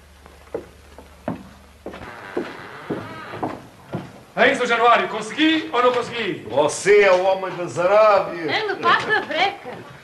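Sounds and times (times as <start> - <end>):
film soundtrack hiss: 0.0 - 10.0
footsteps on a floor: 0.2 - 4.3, 8.9 - 10.0.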